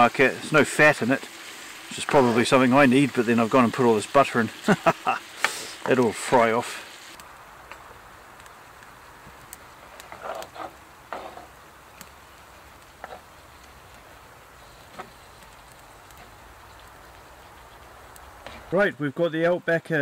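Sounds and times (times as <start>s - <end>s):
food sizzling in a pan: 0.0s - 7.2s
sharp crackles: 0.0s - 20.0s.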